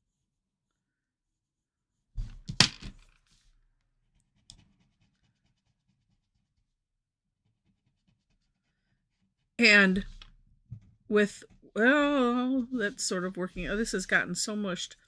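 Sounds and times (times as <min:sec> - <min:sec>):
pencil set down clattering: 0:02.2 - 0:03.2
blending stump rubbing on paper: 0:04.2 - 0:06.8, 0:07.4 - 0:09.5.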